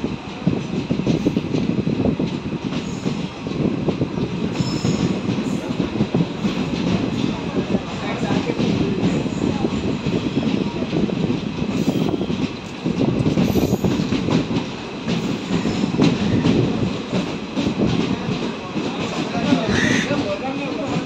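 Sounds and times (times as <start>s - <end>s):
train wheels clattering on rails: 0.0s - 21.0s.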